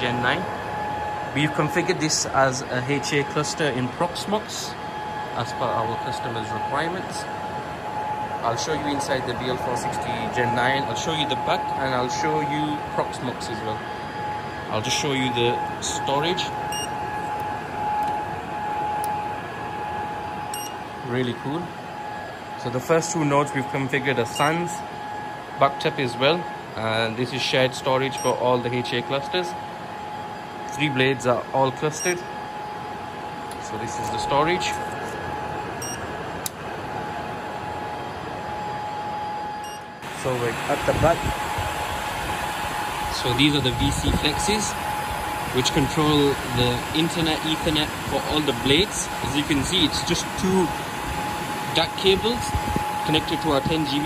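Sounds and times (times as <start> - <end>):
cooling fans whirring: 0.0 - 54.0
thin steady whine: 0.0 - 54.0.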